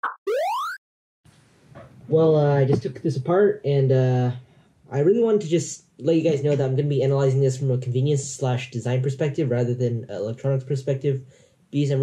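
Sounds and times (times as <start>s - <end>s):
brief electronic blips: 0.0s - 0.8s
rising electronic sweep: 0.3s - 0.8s.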